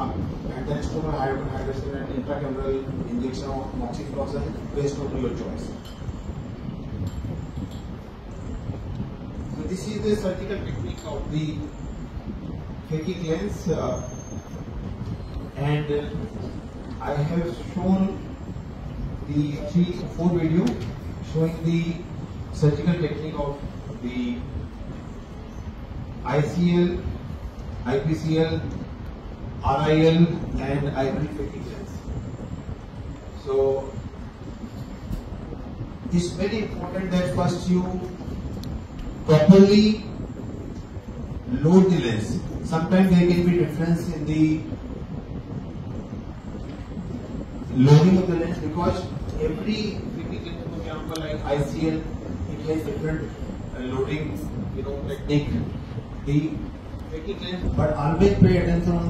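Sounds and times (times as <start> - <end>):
low rumbling background noise: 0.0 - 59.0.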